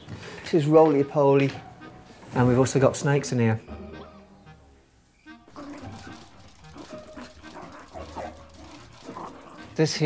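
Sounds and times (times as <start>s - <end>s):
foxes whining and yipping: 5.5s - 9.8s.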